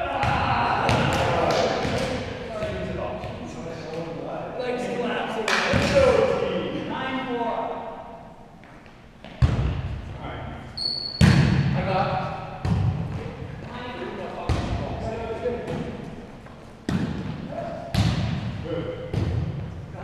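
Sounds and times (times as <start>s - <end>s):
volleyball smacks in echoing gym: 0.1s - 3.3s, 5.5s - 6.2s, 9.2s - 10.0s, 11.0s - 13.4s, 14.4s - 15.0s, 16.8s - 19.7s.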